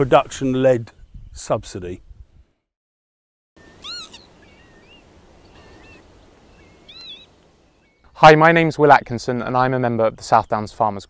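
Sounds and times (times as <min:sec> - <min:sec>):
whistled bird calls: 0:03.6 - 0:08.1.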